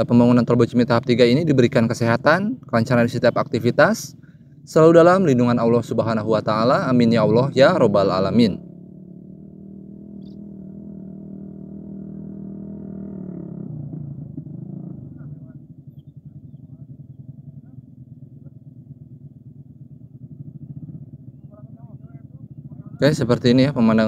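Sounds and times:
motorcycle passing by: 0:00.0 - 0:24.0.

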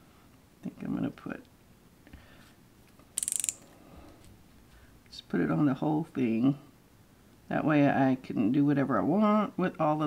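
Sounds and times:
rapid ratcheting clicks: 0:03.2 - 0:03.7.

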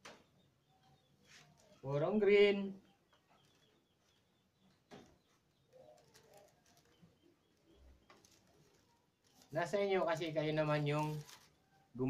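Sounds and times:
faint handling noise of weaving rattan: 0:01.1 - 0:02.1, 0:03.0 - 0:11.9.

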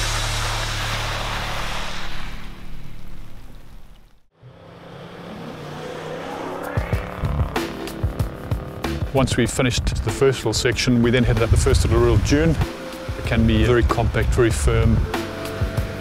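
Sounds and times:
water spraying around wheels: 0:00.0 - 0:04.2, 0:10.4 - 0:16.0
vehicle engine running: 0:04.4 - 0:12.2.

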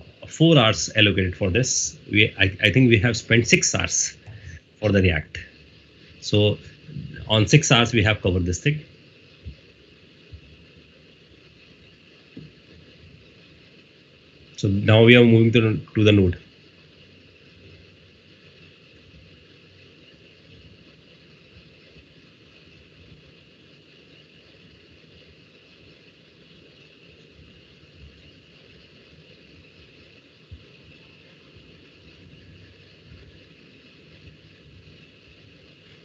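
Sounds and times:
background microphone hiss: 0:00.0 - 0:36.0.

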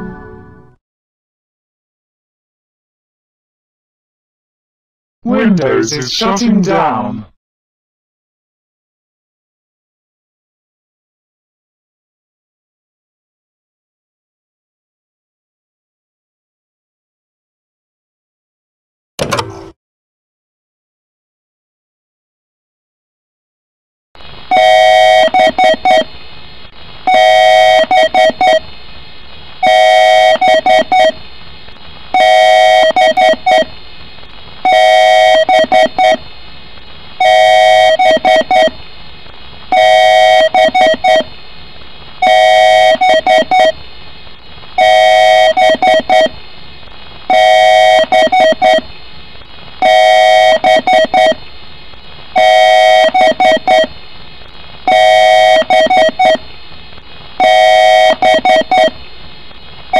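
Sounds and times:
electronic beep pattern: 0:43.0 - 0:43.7, 0:50.6 - 0:51.4, 0:58.0 - 0:58.9.

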